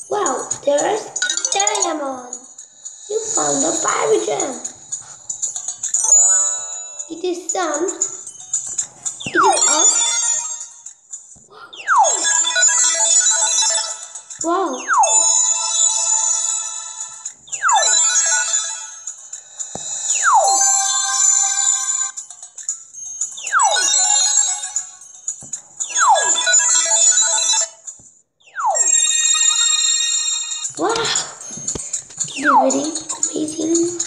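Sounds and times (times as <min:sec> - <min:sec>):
bright sparkly ringing chime: 0:05.9 - 0:07.2, 0:19.9 - 0:22.1.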